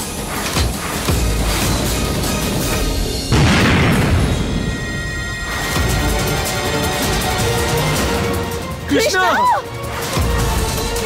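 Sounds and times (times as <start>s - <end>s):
background score music: 0.0s - 11.0s
explosion boom: 3.3s - 5.5s.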